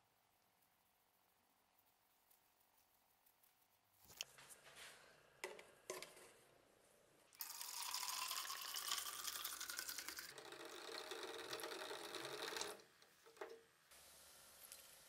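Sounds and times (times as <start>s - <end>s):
liquid pouring into bottle: 7.4s - 12.9s.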